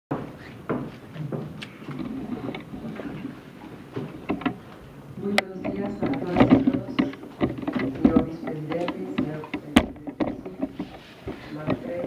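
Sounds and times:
camera handling knocks and rubbing: 0:00.1 - 0:04.8, 0:05.4 - 0:12.0.

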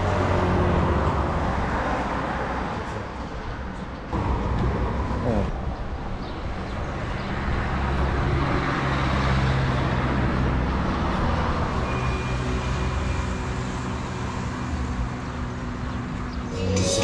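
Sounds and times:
vehicle engine hum: 0:00.0 - 0:17.0.

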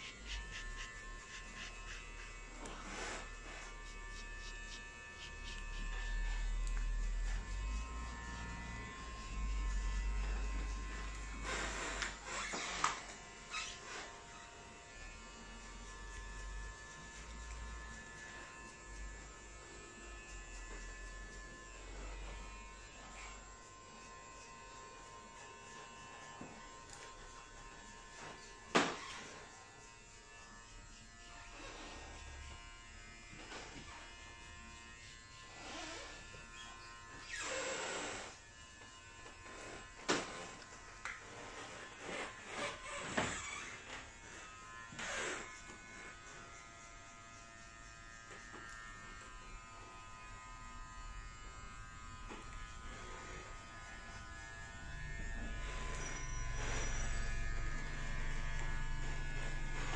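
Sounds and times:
razor scraping scalp: 0:00.0 - 0:59.9.

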